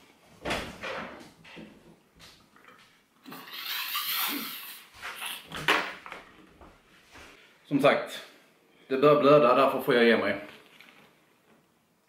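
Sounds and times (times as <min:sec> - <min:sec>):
man sniffing and snorting: 0:03.3 - 0:05.5.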